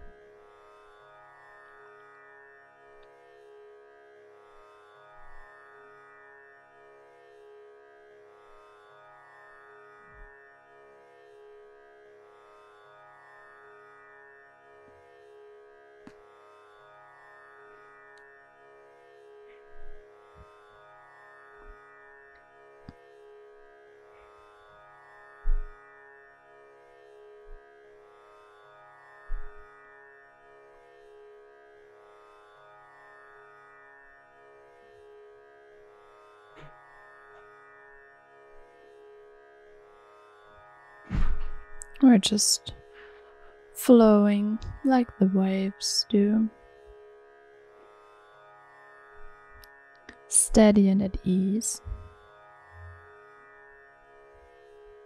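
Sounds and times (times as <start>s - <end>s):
low thumps: 25.5s - 25.7s, 41.1s - 41.8s, 51.8s - 52.1s
calm instrumental music: 51.6s - 53.2s.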